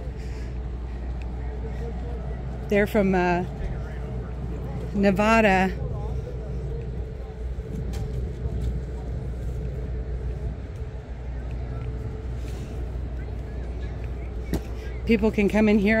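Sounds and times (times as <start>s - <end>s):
engine rumble: 0.0s - 16.0s.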